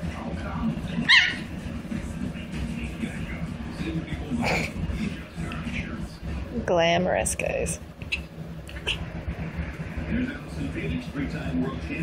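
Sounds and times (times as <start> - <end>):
small dog yipping: 1.0 - 1.5.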